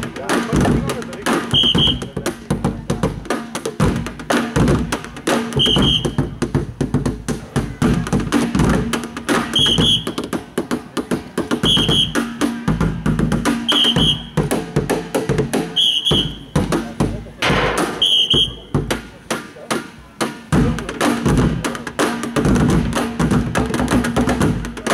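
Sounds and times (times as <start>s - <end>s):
drummers beating plastic barrels: 0.0s - 24.9s.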